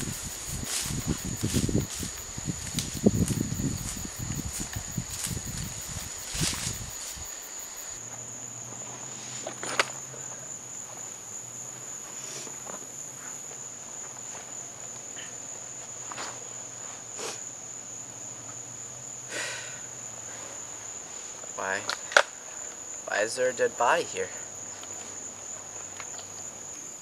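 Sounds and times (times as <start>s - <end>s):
footsteps in undergrowth: 0.0s - 8.0s
insects droning: 0.0s - 27.0s.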